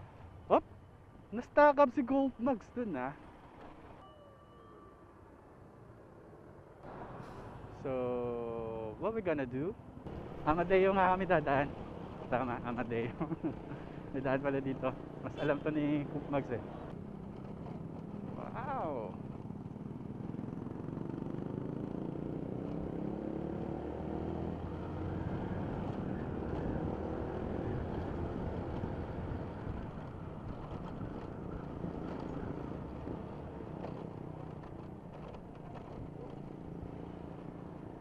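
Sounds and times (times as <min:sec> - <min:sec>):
wind and road rush: 0:00.0 - 0:38.0
motorcycle engine accelerating: 0:16.1 - 0:38.0.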